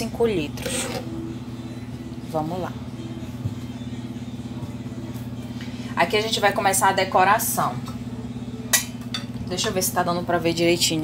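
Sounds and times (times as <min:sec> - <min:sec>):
low motor hum with flutter: 0:00.0 - 0:11.0.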